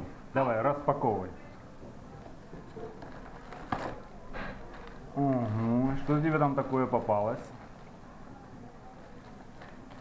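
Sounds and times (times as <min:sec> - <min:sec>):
plastic bag crinkle: 0:02.7 - 0:07.8.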